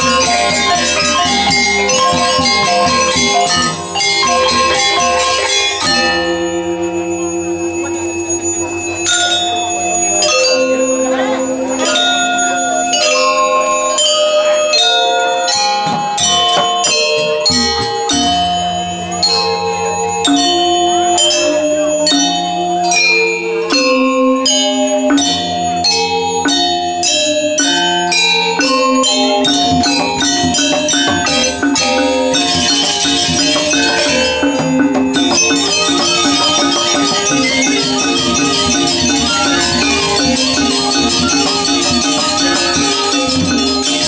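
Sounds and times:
hand drums: 0:00.0 - 0:06.3, 0:15.8 - 0:18.8, 0:28.6 - 0:44.0
long-held low tones: 0:00.0 - 0:11.8, 0:15.5 - 0:44.0
gamelan playing interlocking strokes: 0:00.0 - 0:44.0
gongs ringing with shimmer: 0:00.0 - 0:44.0.

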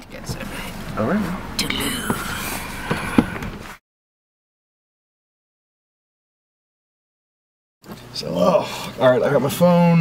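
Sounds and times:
car cabin noise: 0:00.0 - 0:03.8.

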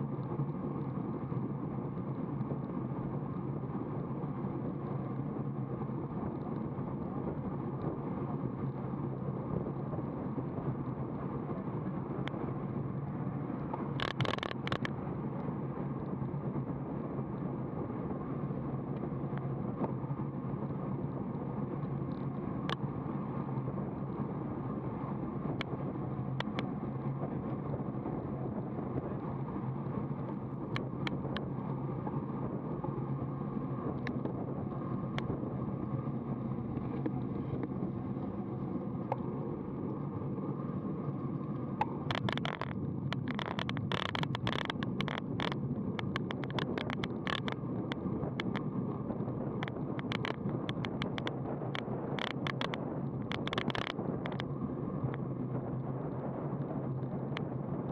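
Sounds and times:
bicycle tyre rumble: 0:00.0 - 0:57.9
rapid rattling clicks: 0:14.0 - 0:14.9, 0:41.8 - 0:48.7, 0:49.6 - 0:54.5
sharp clicks: 0:41.8 - 0:48.6, 0:49.6 - 0:54.5.

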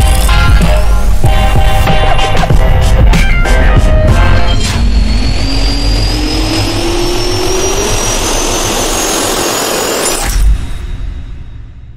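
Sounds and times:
jet turbine spooling up: 0:03.4 - 0:11.1.

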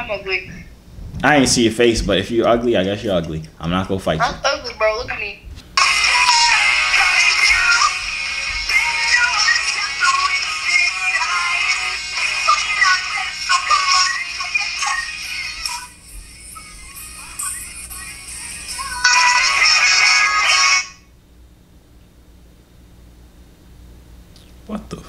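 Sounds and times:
music with singing: 0:05.8 - 0:21.0.

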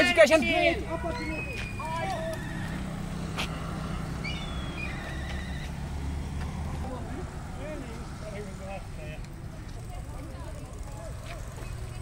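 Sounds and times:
low road rumble: 0:00.0 - 0:12.0
faint distant voices: 0:06.3 - 0:12.0.

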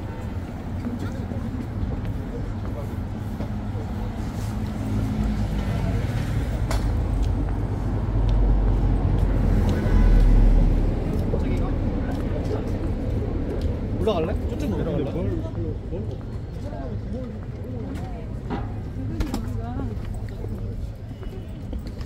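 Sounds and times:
passers-by talking: 0:00.0 - 0:22.0
road traffic rumble: 0:00.0 - 0:22.0.

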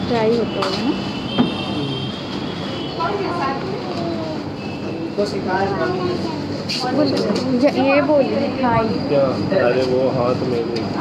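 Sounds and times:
shop ambience hum: 0:00.0 - 0:11.0
sharp knock: 0:01.3 - 0:01.7.

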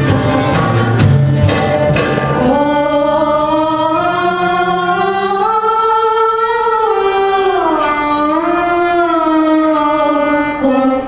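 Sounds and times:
arabic dance music: 0:00.0 - 0:11.0
woman singing wavering line: 0:02.4 - 0:11.0.

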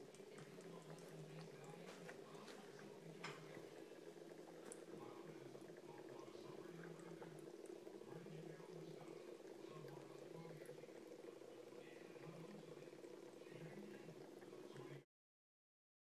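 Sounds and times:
steady low hum: 0:00.0 - 0:15.0
water trickling into glass bowl: 0:00.0 - 0:15.0.

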